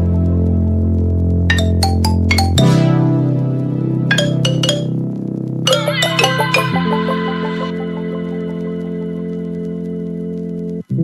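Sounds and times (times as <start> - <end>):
bright bell-like notes: 1.5 - 2.8, 4.1 - 4.9, 5.7 - 8.1
held chord: 1.5 - 3.0, 4.1 - 4.9, 5.7 - 8.6.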